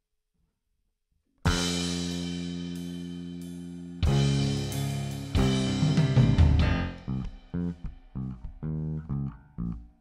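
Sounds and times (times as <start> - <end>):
rock band chord ringing: 1.5 - 9.8.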